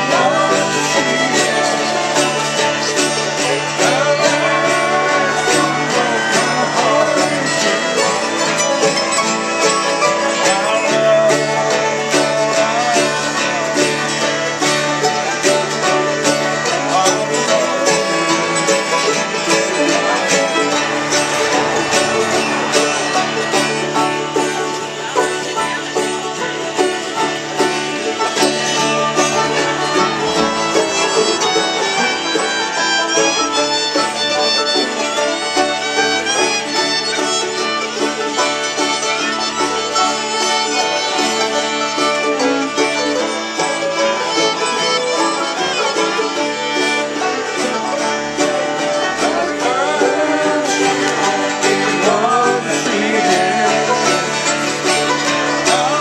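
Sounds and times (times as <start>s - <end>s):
acoustic guitar strumming: 0.0s - 56.0s
fiddle playing: 0.0s - 56.0s
mandolin picking: 0.0s - 56.0s.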